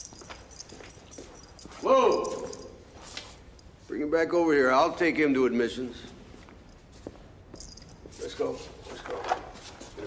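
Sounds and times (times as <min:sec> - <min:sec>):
man yelling: 0:01.8 - 0:02.7
faint shuffling footsteps: 0:05.9 - 0:10.0.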